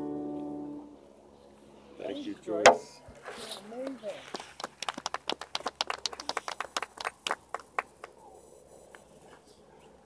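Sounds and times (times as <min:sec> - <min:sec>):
people clapping: 0:03.8 - 0:08.2.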